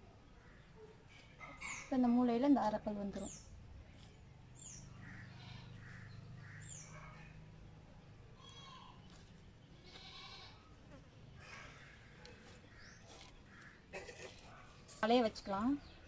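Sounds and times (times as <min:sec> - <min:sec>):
bird chirping: 0:00.2 - 0:10.4
soft animal calls: 0:04.9 - 0:07.4.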